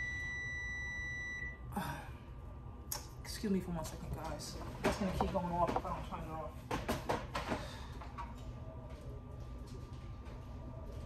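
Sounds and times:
high-pitched electronic alarm tone: 0:00.0 - 0:01.6.

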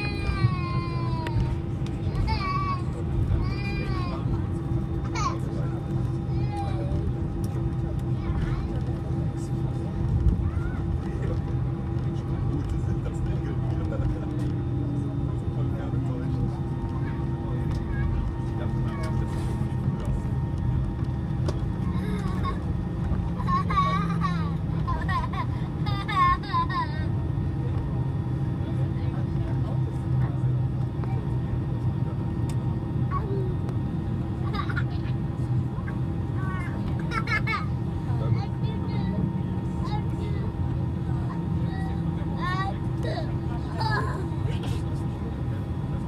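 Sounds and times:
aircraft engines rumbling: 0:00.0 - 0:46.0
airliner cabin drone: 0:00.0 - 0:46.0
passenger chatter: 0:00.0 - 0:46.0.

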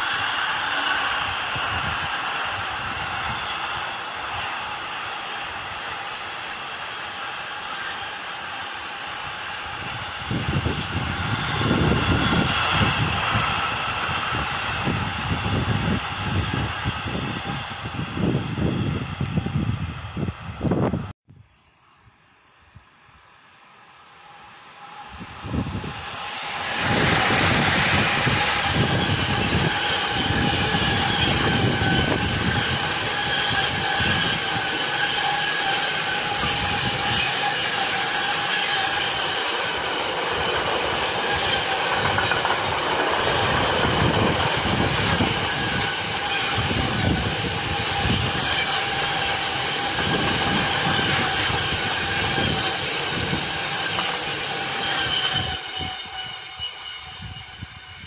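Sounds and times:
train wheels rumbling on rails: 0:00.0 - 0:21.1, 0:23.7 - 0:58.0
sustained high whine: 0:21.4 - 0:58.0.

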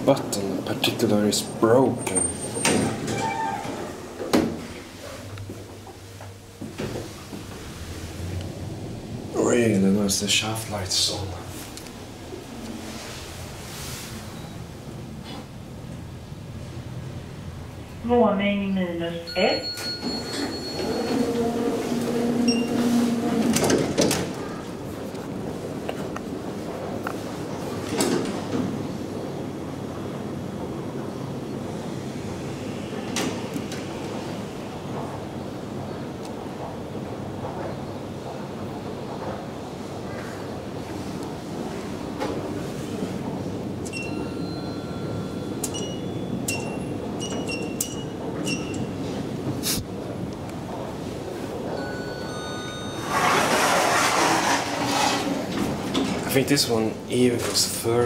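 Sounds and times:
elevator hum: 0:00.0 - 0:58.0
electronic chime tones: 0:19.3 - 0:21.2, 0:51.8 - 0:53.2.

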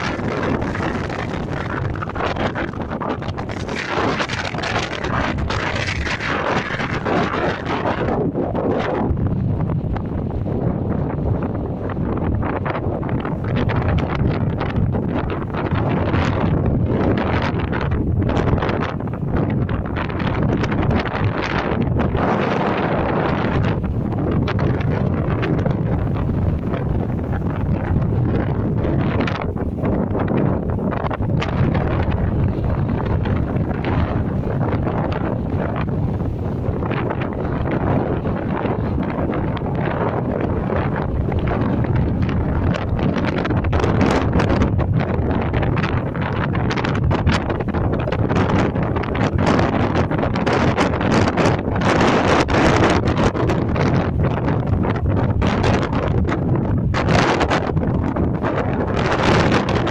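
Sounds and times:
gusty wind on microphone: 0:00.0 - 0:59.9.

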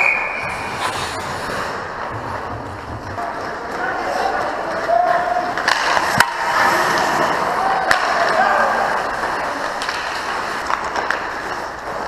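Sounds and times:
skates scraping on ice: 0:00.0 - 0:12.0
sharp crack: 0:05.6 - 0:07.2, 0:09.2 - 0:11.6.

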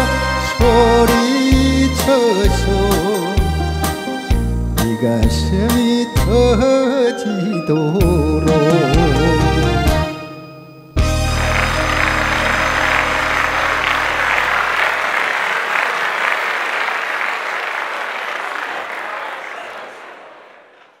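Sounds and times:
held chord of backing music: 0:00.0 - 0:15.6
audience applause: 0:11.0 - 0:21.0.

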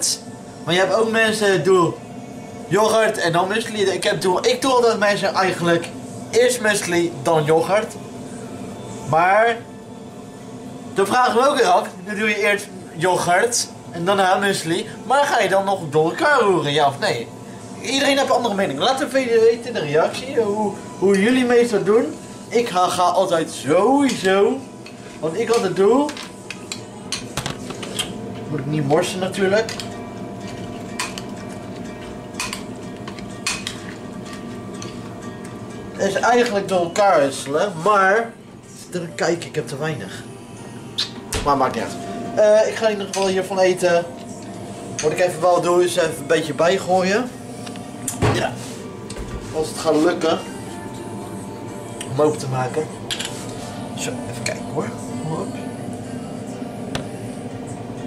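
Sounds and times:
background music: 0:00.0 - 0:58.0
steady background hum: 0:00.0 - 0:58.0.

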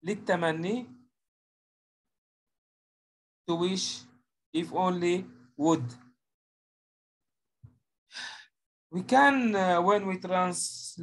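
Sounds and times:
person speaking: 0:03.5 - 0:06.0
sighing exhale: 0:08.2 - 0:08.5.

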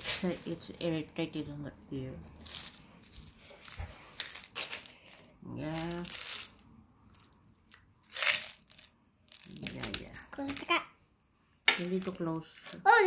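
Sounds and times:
crinkling handling noise: 0:00.0 - 0:10.8.

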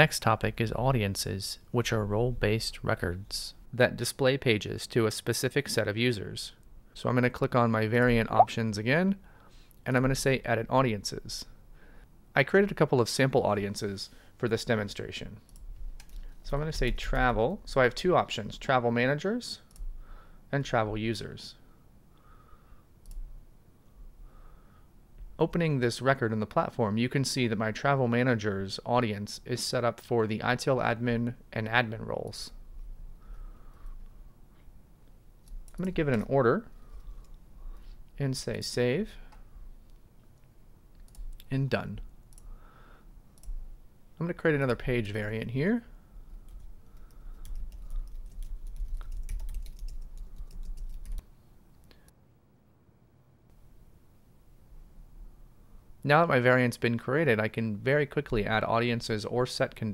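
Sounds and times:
computer mouse clicks: 0:15.5 - 0:16.4, 0:39.3 - 0:41.5
typing on computer keyboard: 0:46.4 - 0:51.2.

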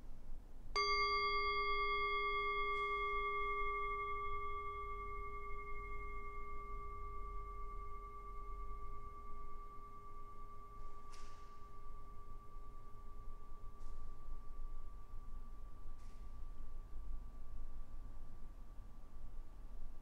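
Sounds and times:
singing bowl ringing: 0:00.8 - 0:18.7.

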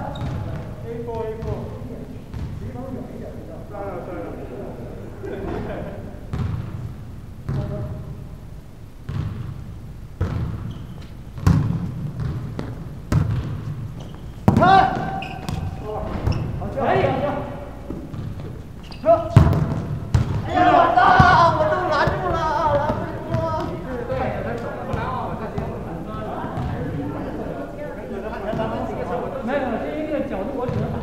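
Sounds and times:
volleyball thumping: 0:10.2 - 0:10.7, 0:11.3 - 0:16.5, 0:17.8 - 0:18.6, 0:19.3 - 0:25.8
players shouting: 0:14.5 - 0:17.8, 0:20.3 - 0:27.8.

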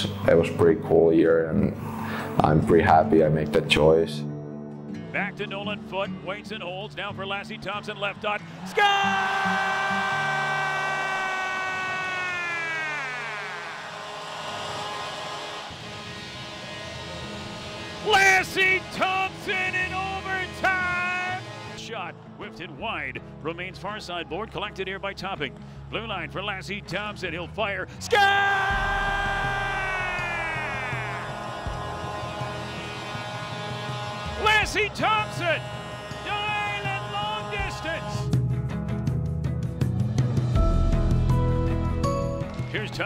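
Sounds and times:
arena goal horn: 0:13.7 - 0:21.9, 0:29.6 - 0:38.4
announcer calling a goal: 0:18.0 - 0:25.4, 0:34.3 - 0:38.3
crowd noise: 0:28.9 - 0:37.9.

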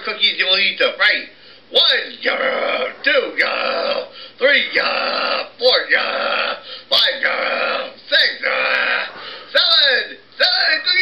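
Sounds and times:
man's gravelly gobbling noises: 0:01.8 - 0:10.0.

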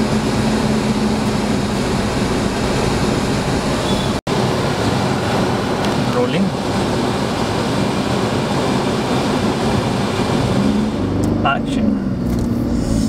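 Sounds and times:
low hum: 0:00.0 - 0:05.8
car running heard from inside: 0:00.0 - 0:13.0.

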